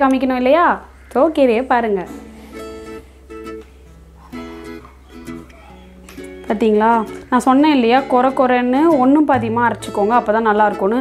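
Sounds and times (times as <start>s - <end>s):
plucked string instrument: 2.1s - 11.0s.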